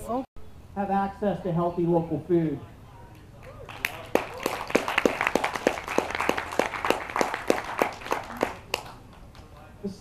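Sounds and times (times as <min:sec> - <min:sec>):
audience clapping: 0:03.6 - 0:09.7.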